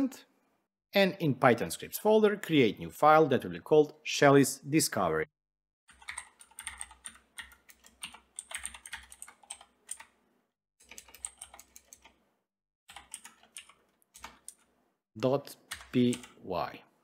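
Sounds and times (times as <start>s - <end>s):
computer keyboard typing: 5.9s - 10.2s, 10.8s - 12.2s, 12.9s - 14.7s, 15.6s - 16.4s.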